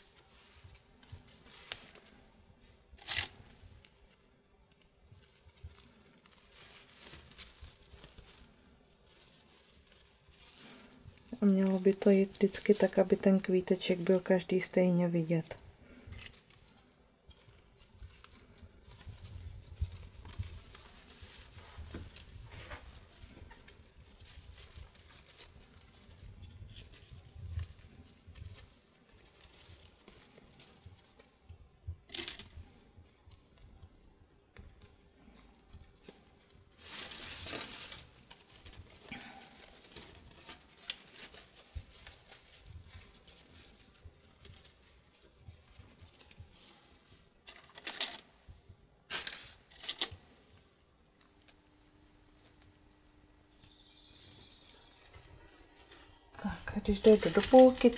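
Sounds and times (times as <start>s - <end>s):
stiff lace rustling: 0.0s - 57.9s.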